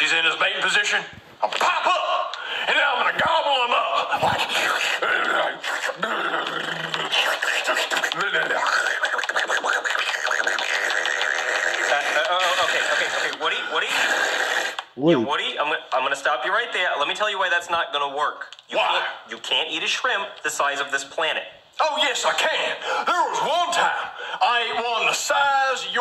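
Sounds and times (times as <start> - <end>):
man making chomping eating noises: 4.1 - 15.2.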